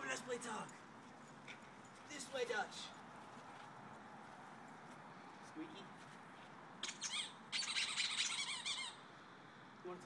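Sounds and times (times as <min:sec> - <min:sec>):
squeaky dog toy squeaking: 0:06.8 - 0:09.1.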